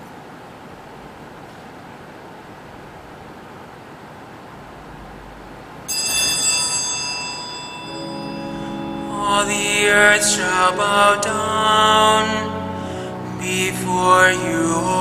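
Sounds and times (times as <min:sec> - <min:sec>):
room hiss: 0:00.0 - 0:15.0
ringing instrumental chords: 0:05.9 - 0:15.0
person singing: 0:07.8 - 0:15.0.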